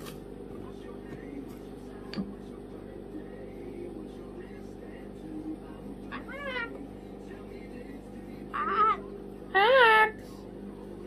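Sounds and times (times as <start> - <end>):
low room hum: 0.0 - 11.0
cockatoo mewing call: 6.1 - 6.8, 8.5 - 10.2.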